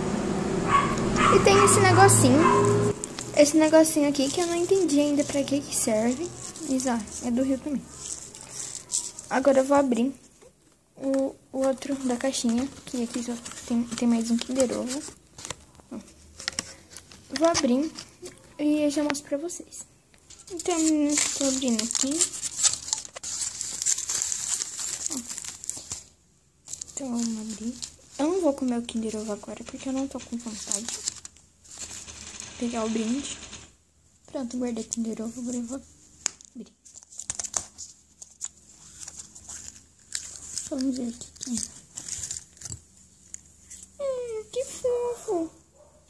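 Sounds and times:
foil wrapper crinkling: 3.0s - 9.6s, 20.3s - 33.7s, 36.2s - 43.9s
plastic toy parts rustling: 3.0s - 9.8s, 10.6s - 19.0s, 20.2s - 33.7s, 34.8s - 44.0s.

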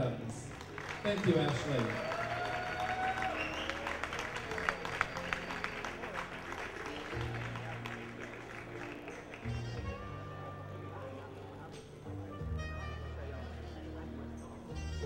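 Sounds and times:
background music: 0.0s - 15.0s
audience applauding and cheering: 0.4s - 10.0s.

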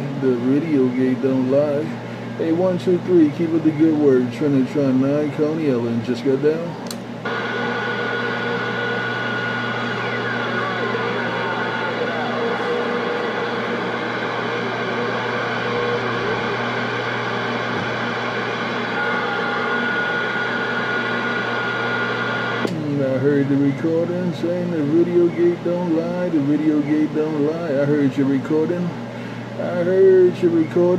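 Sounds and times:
high radio whistle: 7.3s - 16.6s, 19.0s - 22.7s
radio static hiss: 7.3s - 19.1s, 20.4s - 22.7s.

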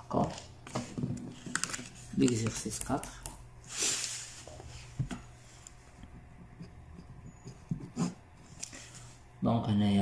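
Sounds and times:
pen scratching on paper: 6.5s - 8.2s.

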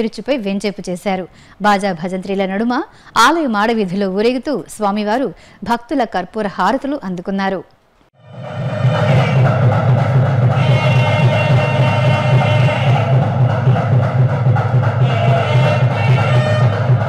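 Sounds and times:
steady low drone: 8.2s - 17.0s
temple drums: 8.2s - 17.0s
wind instrument: 8.2s - 17.0s.

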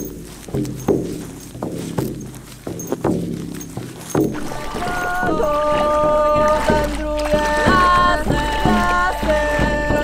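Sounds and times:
frame drum beating: 0.0s - 10.0s.

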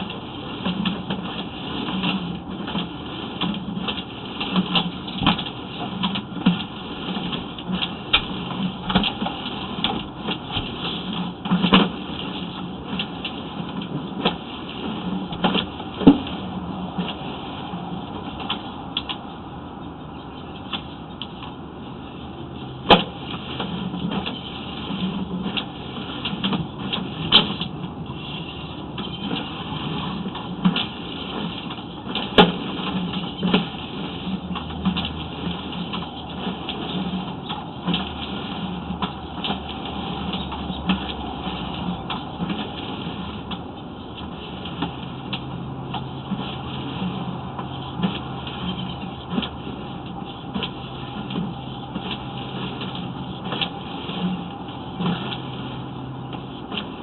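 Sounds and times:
steady mechanical hum: 0.0s - 57.0s.

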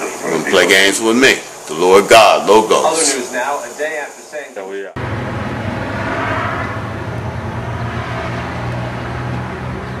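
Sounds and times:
low hum: 5.0s - 10.0s
outdoor background rumble: 5.0s - 10.0s.

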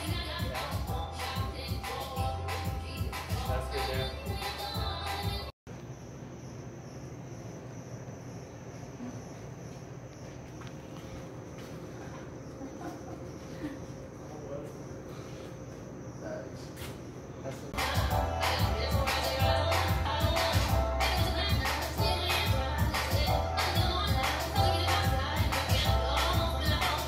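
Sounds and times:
music with singing: 0.0s - 5.5s, 17.8s - 27.0s.

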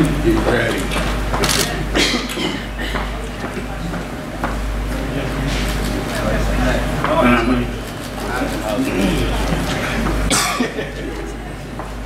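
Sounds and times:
low murmur of room noise: 0.0s - 12.0s
person coughing: 1.9s - 3.1s, 10.3s - 10.8s.

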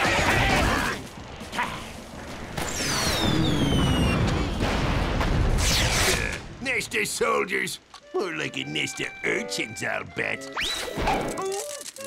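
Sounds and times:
low rumble of explosions: 0.0s - 7.9s
falling whistles: 2.7s - 4.3s, 10.5s - 11.0s.

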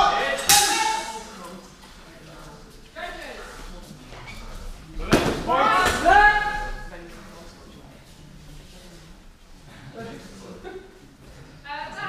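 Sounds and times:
weapons striking: 0.3s - 1.4s.

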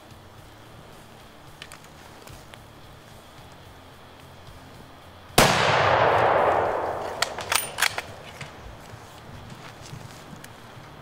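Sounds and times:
rifle shot echoing: 5.4s - 8.7s
rifle bolt clicks: 5.7s - 8.6s.

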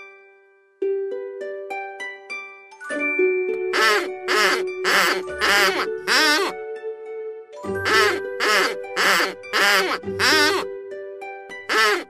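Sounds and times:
children's song with keyboard tones: 0.0s - 12.0s
cartoon rabbit squeaking: 3.8s - 6.6s, 7.8s - 10.7s, 11.7s - 12.0s.

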